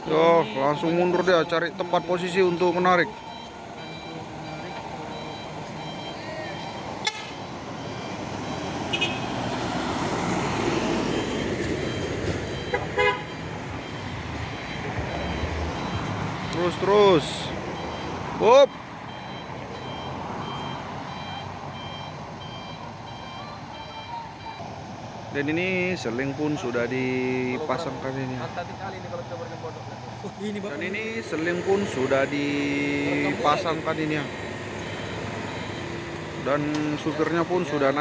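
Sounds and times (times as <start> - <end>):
car passing: 0.0 - 23.3, 24.3 - 38.0
diesel truck engine running: 0.0 - 38.0.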